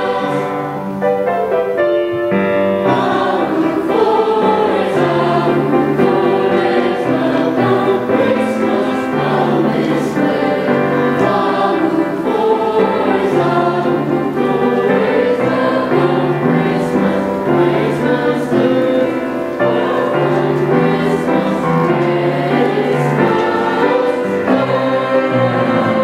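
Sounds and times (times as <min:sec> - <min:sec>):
choir singing in harmony: 0:00.0 - 0:26.0.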